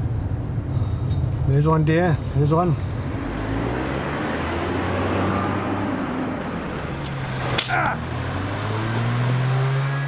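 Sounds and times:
tyre and road noise: 0:00.0 - 0:10.0
car engine hum: 0:02.2 - 0:10.0.

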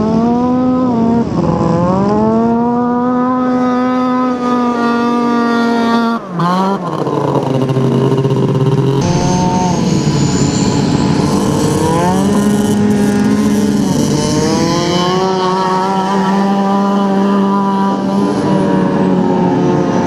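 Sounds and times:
snowmobile engines revving: 0:00.0 - 0:20.0
thin rising whine: 0:08.2 - 0:15.3.

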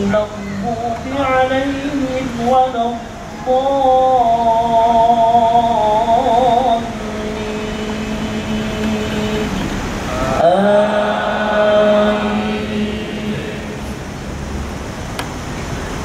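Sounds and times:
man chanting over loudspeaker: 0:00.0 - 0:14.0.

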